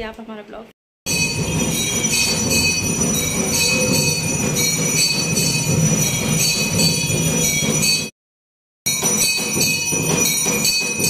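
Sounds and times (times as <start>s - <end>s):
bells ringing rapidly: 1.1s - 8.2s, 8.8s - 11.0s.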